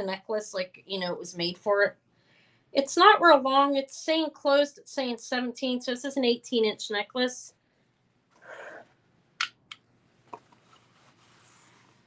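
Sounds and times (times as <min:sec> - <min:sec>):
soft rustle: 0:10.2 - 0:12.0.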